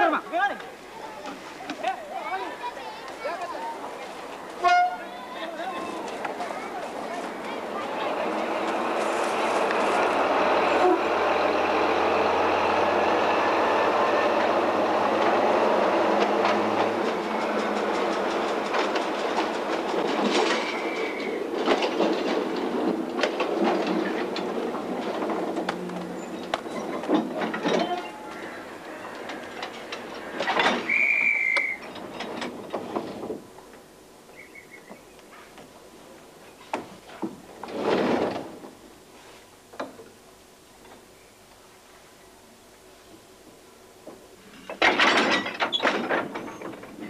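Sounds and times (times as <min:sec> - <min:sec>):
wheels clacking on rails: 0:00.0 - 0:33.9, 0:44.0 - 0:47.0
train rumbling on rails: 0:02.6 - 0:35.0.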